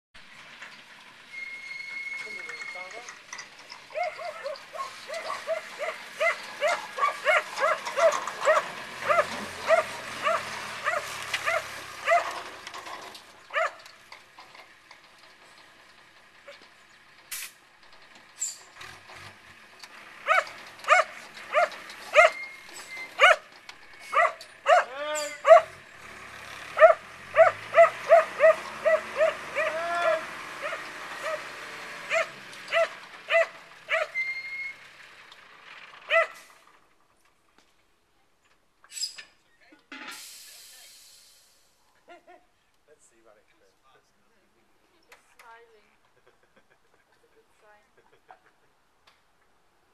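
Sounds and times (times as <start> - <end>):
faint diesel engine revving: 2.2 - 37.0
small dog barking: 4.0 - 12.3, 13.5 - 13.8, 20.3 - 22.4, 23.2 - 23.4, 24.1 - 25.7, 26.8 - 29.8, 32.1 - 34.2, 36.1 - 36.4.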